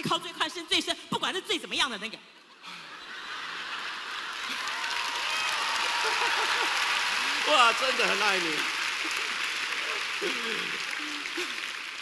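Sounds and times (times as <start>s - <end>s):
large audience applauding: 3.6s - 12.0s.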